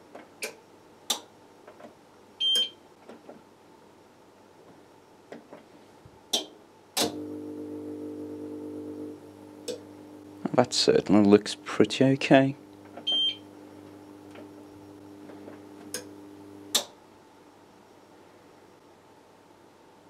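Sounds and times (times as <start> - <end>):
low electrical hum: 0.0 - 20.0.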